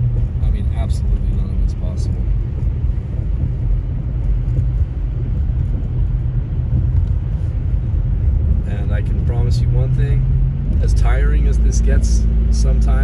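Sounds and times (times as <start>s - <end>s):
car engine drone: 0.0s - 13.0s
road noise: 0.0s - 13.0s.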